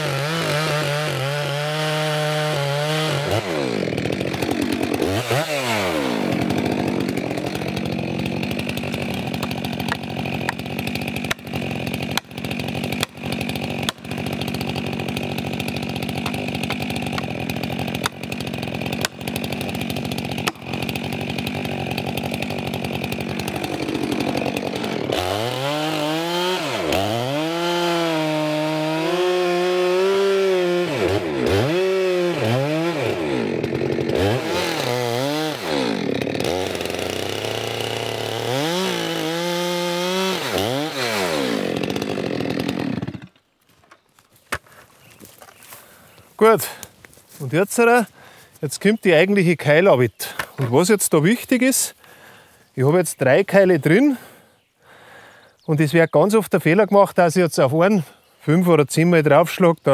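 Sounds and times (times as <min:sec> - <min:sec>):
chainsaw cutting wood: 0:00.0 - 0:49.1.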